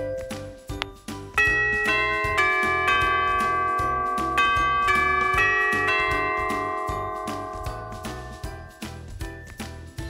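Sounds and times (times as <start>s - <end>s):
doorbell chime melody: 0.0s - 10.0s.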